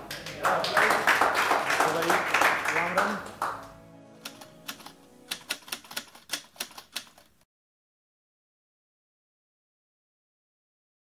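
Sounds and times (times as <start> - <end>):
sharp clicks: 4.2 - 7.4.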